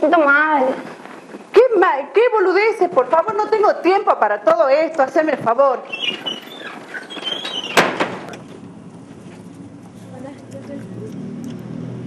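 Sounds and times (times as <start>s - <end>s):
wooden door squeaking on hinges: 5.8s - 8.4s
door banging shut: 5.9s - 8.5s.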